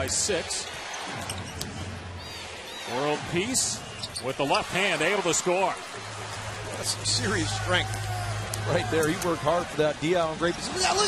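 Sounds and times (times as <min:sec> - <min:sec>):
arena crowd noise: 0:00.0 - 0:11.0
sneakers squeaking on court: 0:00.8 - 0:02.9, 0:03.8 - 0:04.4.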